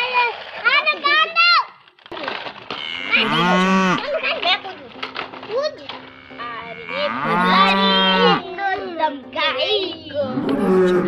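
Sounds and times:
cow mooing: 2.7 - 4.1, 5.9 - 8.4, 10.2 - 11.0.

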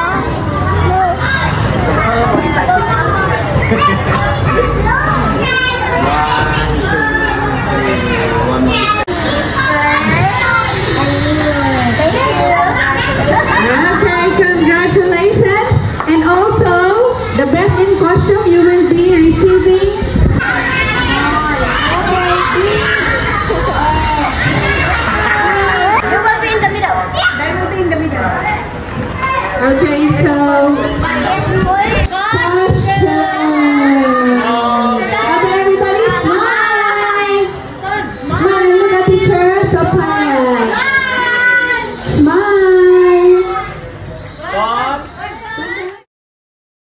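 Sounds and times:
adult voices: 0.0 - 46.0
children chattering and calling: 0.0 - 46.1.

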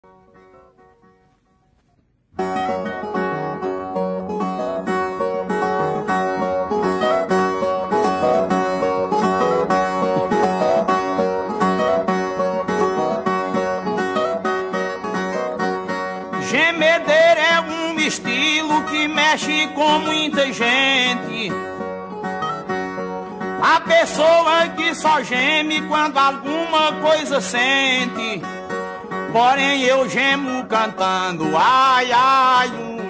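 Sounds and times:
fast plucked guitar runs: 2.5 - 32.8.

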